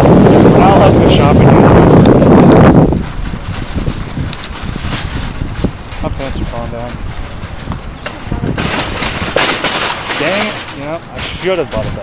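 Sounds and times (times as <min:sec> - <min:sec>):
microphone handling noise: 0:00.0 - 0:12.0
wind buffeting microphone: 0:00.0 - 0:12.0.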